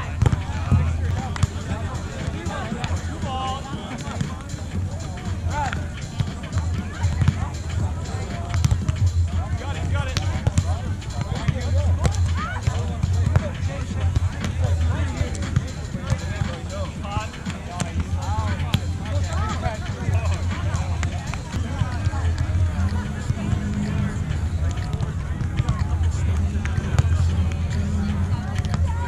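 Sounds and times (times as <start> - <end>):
background voices: 0.0 - 29.0
people chattering and calling: 0.0 - 29.0.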